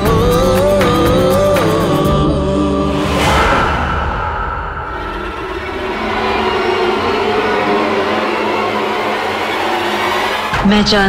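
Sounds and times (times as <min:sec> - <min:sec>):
suspense score drone: 0:02.4 - 0:11.0.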